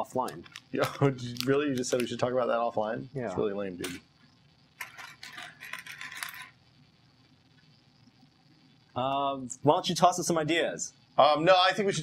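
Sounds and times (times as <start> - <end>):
plastic toy bricks clattering: 4.8 - 6.5.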